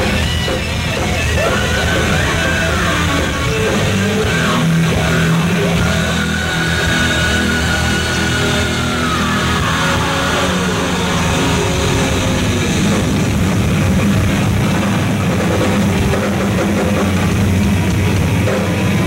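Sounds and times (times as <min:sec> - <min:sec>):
metal band playing live: 0:00.0 - 0:19.0.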